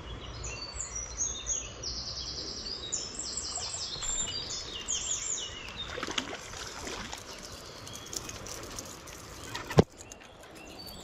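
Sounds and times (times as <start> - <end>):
songbirds chirping and trilling: 0.0 - 11.0.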